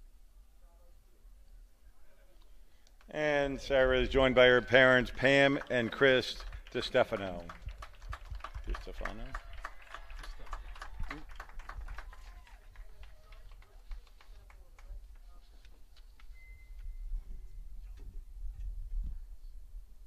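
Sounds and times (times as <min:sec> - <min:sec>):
crowd clapping: 0:03.1 - 0:16.3.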